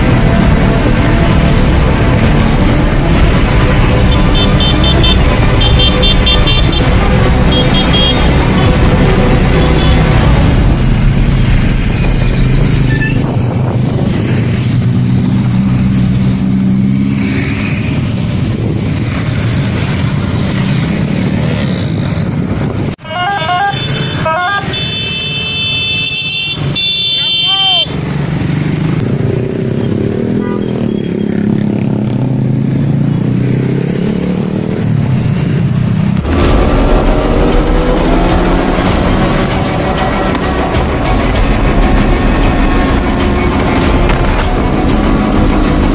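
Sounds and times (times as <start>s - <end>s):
horn toots: 0.0s - 10.8s, 23.0s - 27.9s, 30.2s - 31.2s, 36.2s - 45.9s
scooters and cars passing: 0.0s - 45.9s.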